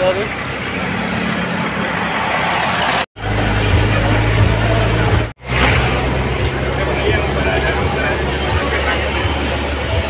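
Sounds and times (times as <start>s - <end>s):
bus engine drone: 0.0s - 10.0s
road noise: 0.0s - 10.0s
loud dance music: 3.2s - 10.0s.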